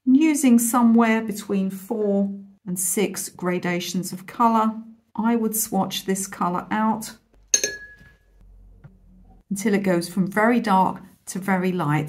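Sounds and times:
paintbrush clinking against glass jar: 7.4s - 8.3s.

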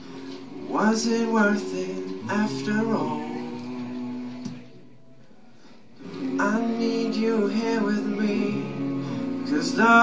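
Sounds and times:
male vocal group holding chord: 6.0s - 10.0s.

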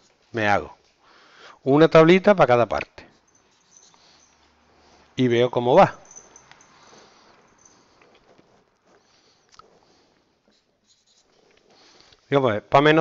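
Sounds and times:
marker writing on whiteboard: 6.1s - 12.0s.

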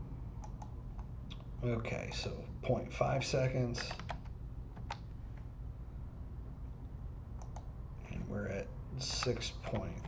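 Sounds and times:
low steady hum: 0.0s - 10.0s
keyboard keystrokes: 3.8s - 5.0s.

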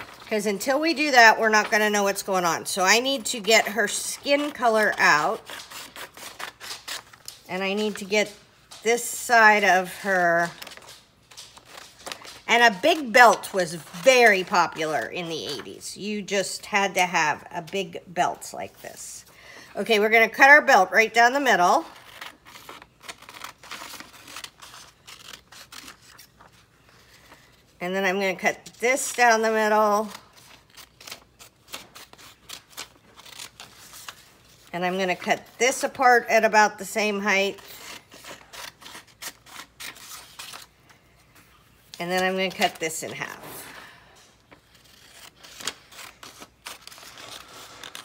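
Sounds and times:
scissors snipping paper: 0.0s - 9.1s, 10.4s - 15.6s, 21.7s - 26.4s, 28.9s - 34.3s, 44.5s - 48.0s.

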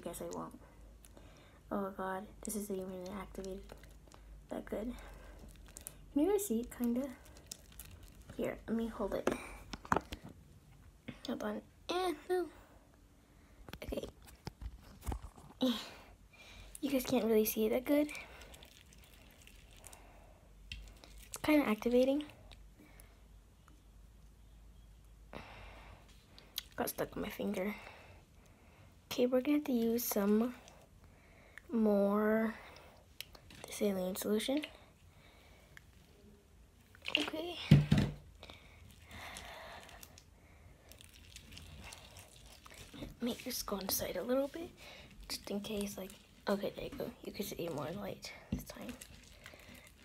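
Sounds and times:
slime squishing: 2.4s - 10.4s, 16.8s - 22.7s, 36.8s - 50.0s.

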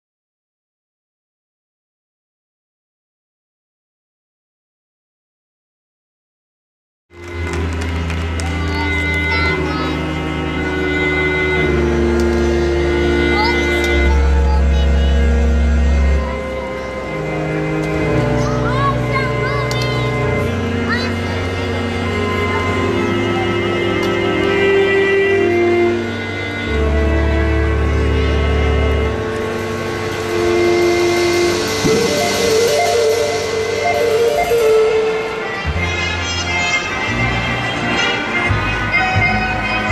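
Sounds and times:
deep bass drone: 7.1s - 39.9s
sustained synthesizer chords: 9.6s - 36.2s
deep bass note: 26.7s - 35.1s.

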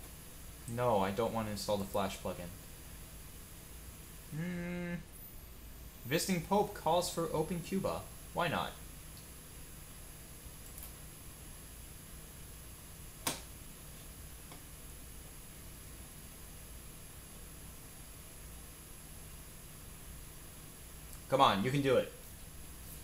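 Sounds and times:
faint low hum: 0.0s - 23.0s.

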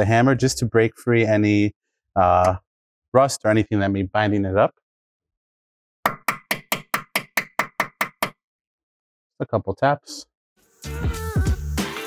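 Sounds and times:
hammer tapping metal bit: 6.1s - 8.4s.

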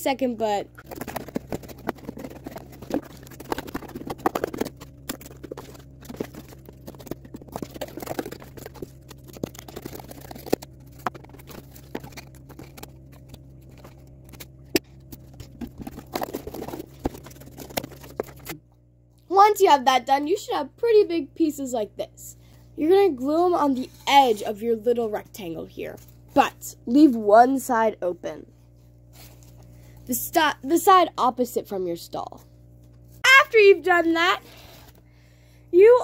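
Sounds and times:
cardboard rustling: 0.8s - 18.6s.

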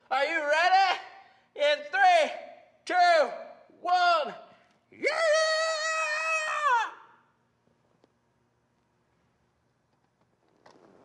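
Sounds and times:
man shouting: 0.1s - 7.2s.

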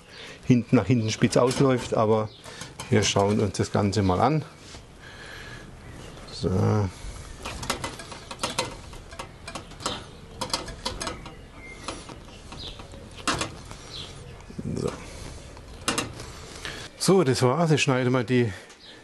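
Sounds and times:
hands tying twine clicks and rustles: 0.4s - 4.0s, 6.2s - 16.9s.

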